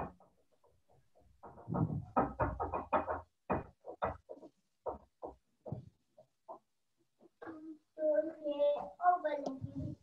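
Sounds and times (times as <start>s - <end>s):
choppy voice on video call: 7.3s - 10.0s.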